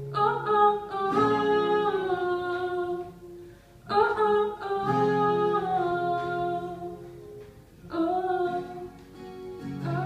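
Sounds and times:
strummed acoustic guitar: 0.0 - 10.0.

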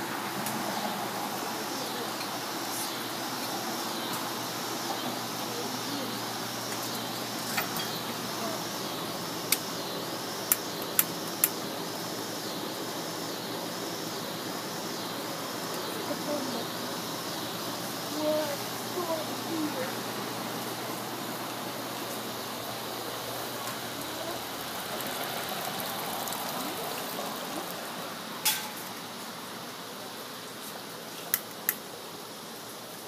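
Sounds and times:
outdoor background hiss: 0.0 - 33.0
faint voices: 0.8 - 10.1, 15.2 - 31.0.

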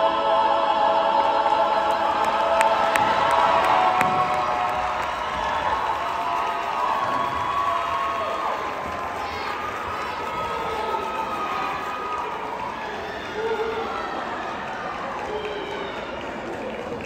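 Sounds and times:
choir singing a chord: 0.0 - 4.8
people clapping: 1.2 - 17.0
audience cheering: 1.4 - 17.0.

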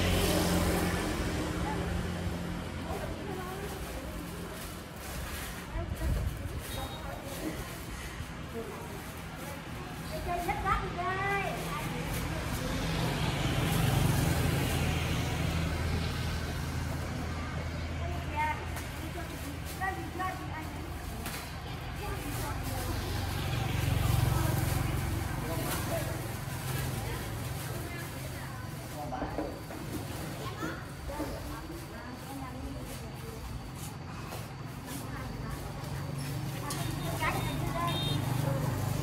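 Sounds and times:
people talking: 0.0 - 15.8, 16.6 - 39.0
passing motor vehicles: 0.0 - 39.0.

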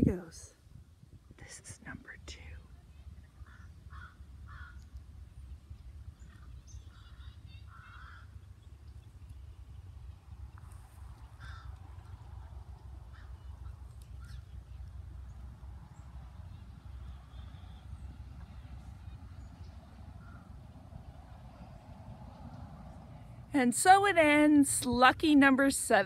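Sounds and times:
wind rumbling on microphone: 0.0 - 25.6
distant crow-like caws: 3.4 - 4.9, 6.9 - 8.4, 11.2 - 12.2, 13.0 - 14.4, 20.2 - 20.5.

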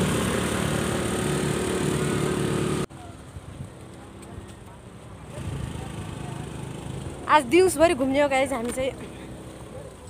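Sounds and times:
motor scooter engine running: 0.0 - 4.5, 5.2 - 10.0.

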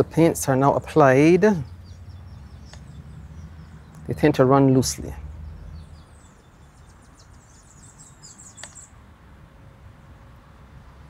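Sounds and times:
small birds chirping: 0.0 - 9.1
sharp click: 8.5 - 8.9.

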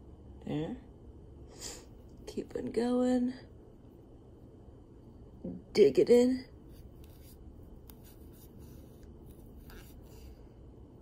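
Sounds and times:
steady low hum: 0.0 - 11.0
crochet hook scratching yarn: 6.6 - 10.3.

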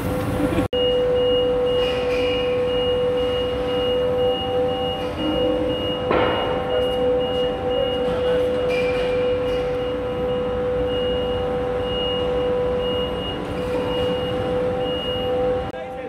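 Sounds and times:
floor sweeper whining and rumbling: 2.4 - 16.0.

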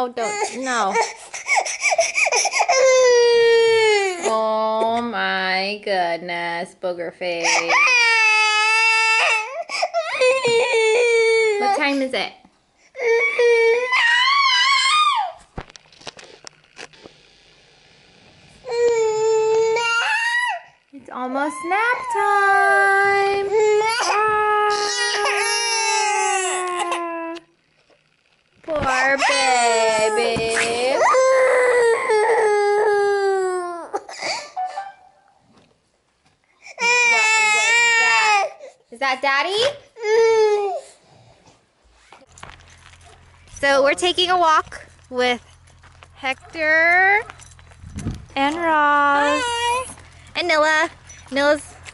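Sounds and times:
baby crying: 0.0 - 4.4, 7.4 - 11.9, 13.0 - 15.4, 18.6 - 20.8, 21.4 - 27.5, 29.0 - 34.5, 36.7 - 38.7, 48.9 - 50.0.

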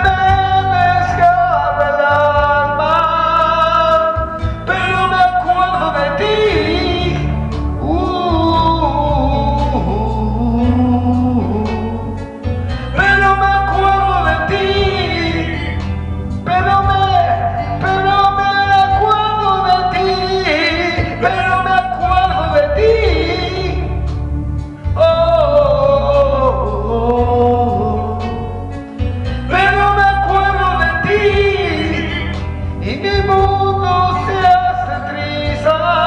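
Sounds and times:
man singing into a microphone: 0.0 - 24.2, 24.8 - 36.0
recorded backing track: 0.0 - 36.0.

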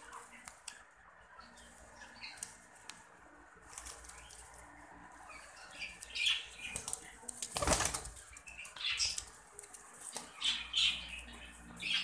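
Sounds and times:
pigeons flapping wings: 6.8 - 8.2.

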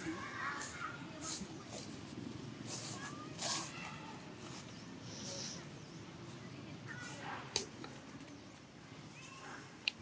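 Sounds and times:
crunchy rustles in dry leaves: 0.0 - 7.4.

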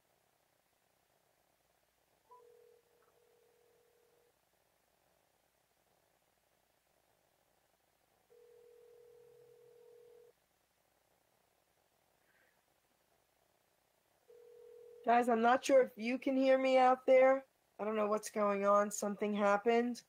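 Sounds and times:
telephone ringback tone: 2.3 - 4.3, 8.3 - 10.3, 14.3 - 15.1.

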